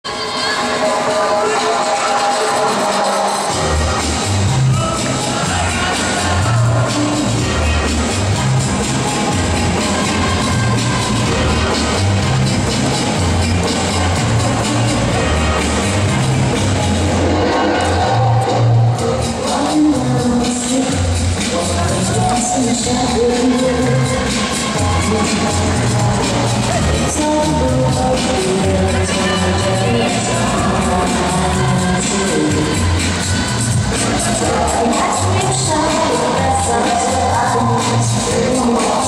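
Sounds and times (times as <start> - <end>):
crowd noise in a hall: 0.0 - 39.0
latin dance music: 0.0 - 39.0.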